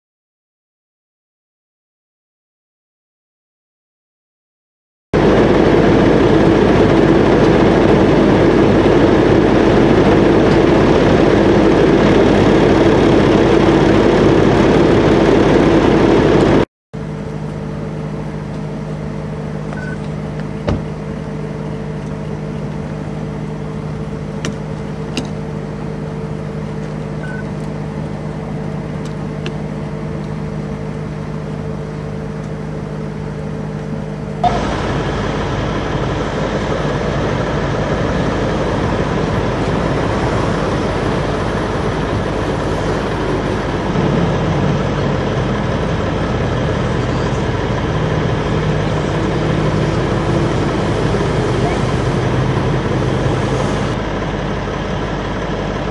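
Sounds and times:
vehicle engines idling: 5.2s - 55.9s.

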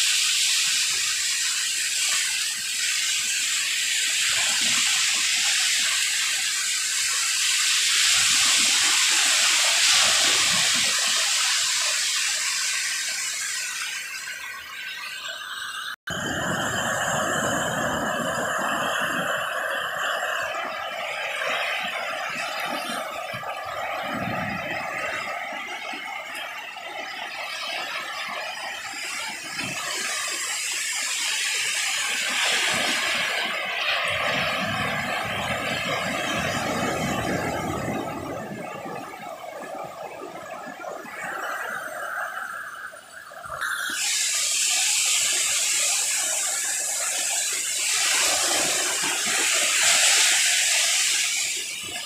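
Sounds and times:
small waves washing onto beach: 0.0s - 52.0s.

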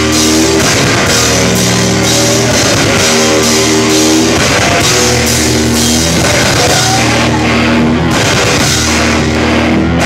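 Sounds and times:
distorted guitar chords: 0.0s - 10.0s
drum kit and cymbals: 0.0s - 10.0s.

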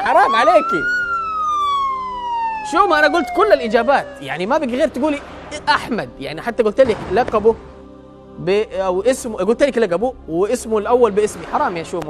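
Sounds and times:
descending electronic tone: 0.0s - 5.7s.

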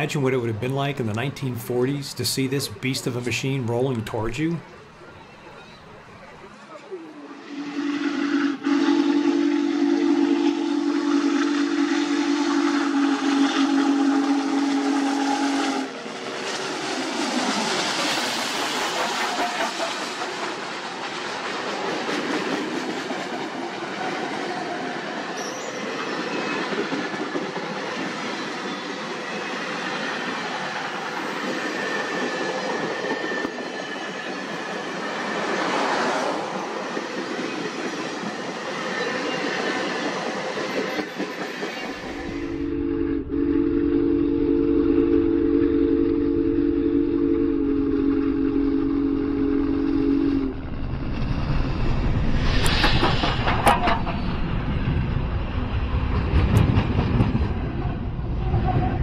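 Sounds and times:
steam locomotive whistle blast: 7.3s - 16.0s, 40.7s - 50.6s
train wheels on rails: 7.5s - 42.7s, 48.3s - 59.0s.

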